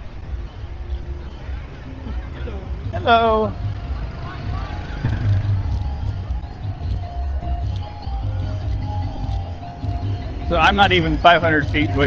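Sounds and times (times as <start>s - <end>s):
distant voices: 0.0s - 12.0s
faint music of held notes: 0.0s - 12.0s
low street rumble: 0.0s - 12.0s.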